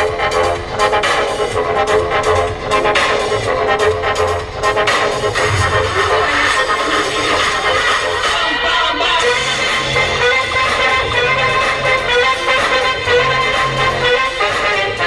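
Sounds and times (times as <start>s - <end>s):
electronic dance music: 4.8s - 8.2s.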